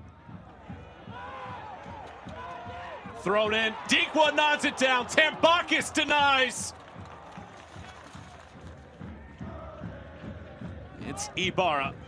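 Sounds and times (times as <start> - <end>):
crowd chanting: 0.5 - 11.0.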